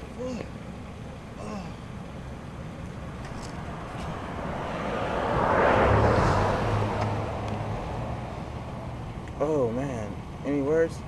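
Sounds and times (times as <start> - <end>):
low engine hum: 0.0 - 11.0
vehicle passing on street: 0.6 - 11.0.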